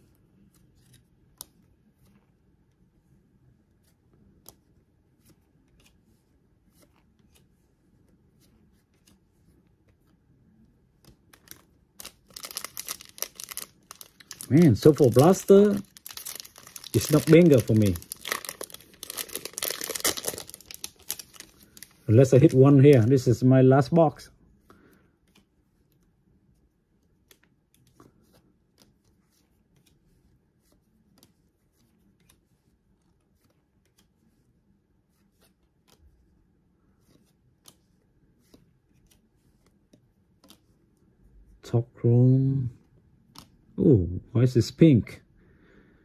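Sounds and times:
trading cards flipped by hand: 0:00.1 - 0:02.4, 0:03.7 - 0:10.2, 0:10.8 - 0:23.2, 0:25.2 - 0:26.1, 0:27.0 - 0:41.0, 0:43.2 - 0:43.7
foil wrapper tearing and crinkling: 0:11.5 - 0:22.6.

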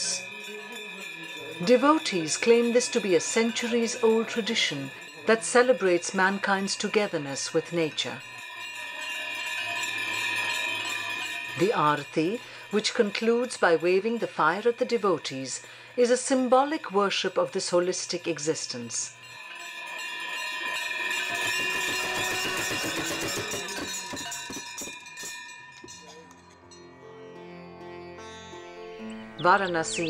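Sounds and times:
bells ringing: 0:00.0 - 0:27.5, 0:28.2 - 0:30.0
drum beating rapidly: 0:21.1 - 0:25.2.

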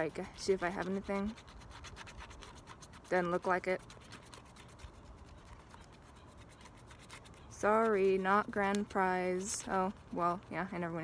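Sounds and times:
scratching paper card: 0:00.0 - 0:11.0.

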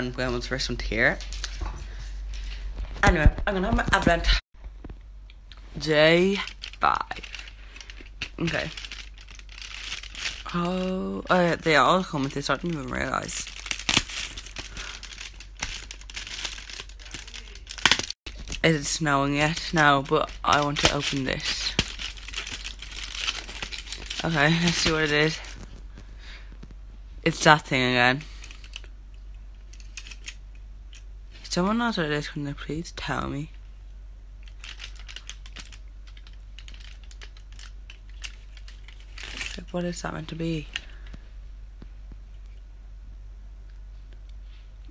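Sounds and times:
cardboard crinkling and clicking: 0:06.3 - 0:10.9, 0:11.6 - 0:26.7, 0:34.5 - 0:39.7.

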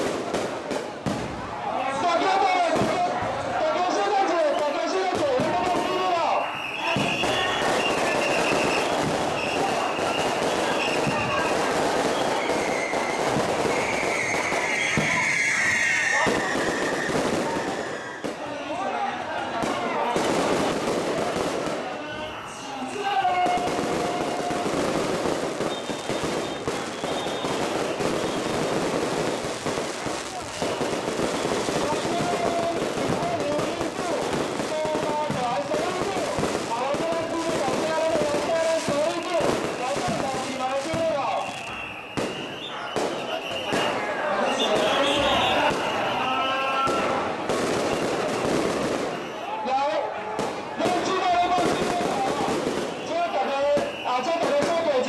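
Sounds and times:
crowd voices: 0:00.0 - 0:55.0
firecrackers crackling: 0:00.0 - 0:55.0.

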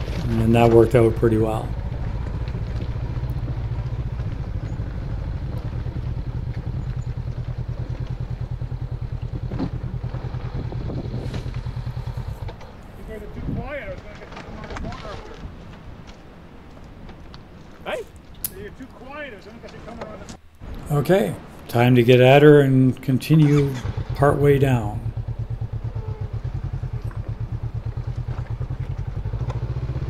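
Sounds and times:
motorcycle engine idling: 0:00.0 - 0:14.7, 0:23.4 - 0:30.0.

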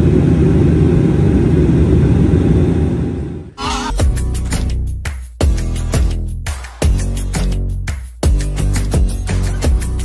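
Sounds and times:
airliner engines and rushing air roar: 0:00.0 - 0:03.9.

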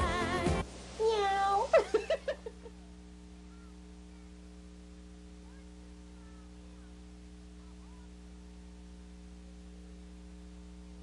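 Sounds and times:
high-pitched cackling laugh: 0:01.7 - 0:02.8.

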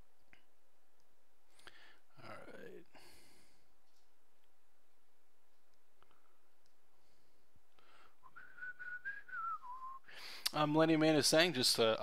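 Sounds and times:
person whistling softly: 0:07.9 - 0:10.4.

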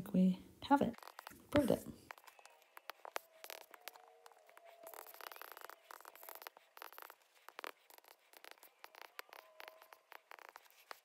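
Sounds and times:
stylus tapping on tablet screen: 0:00.9 - 0:11.0.

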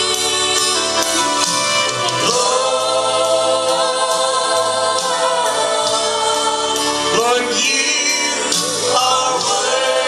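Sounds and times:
choir voices: 0:00.0 - 0:10.0
gospel backing music: 0:00.0 - 0:10.0.

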